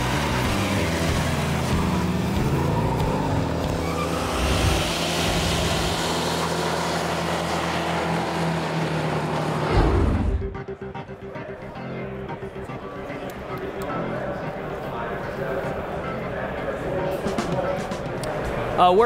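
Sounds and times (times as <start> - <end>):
car engine revving: 0.0 - 18.2.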